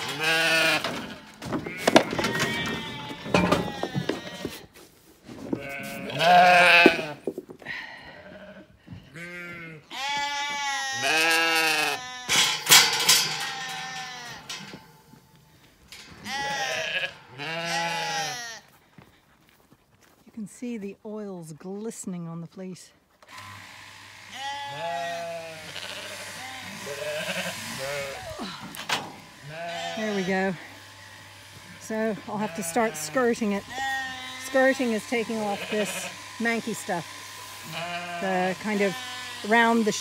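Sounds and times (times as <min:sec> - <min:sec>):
sheep bleating: 0:00.0 - 0:04.6, 0:05.5 - 0:07.3, 0:08.2 - 0:14.7, 0:16.2 - 0:18.7, 0:23.4 - 0:28.6, 0:29.3 - 0:40.0.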